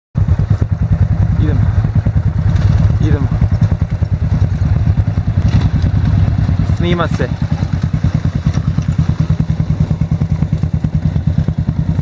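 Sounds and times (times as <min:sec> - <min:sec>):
dirt bike engines idling: 0:00.2 - 0:12.0.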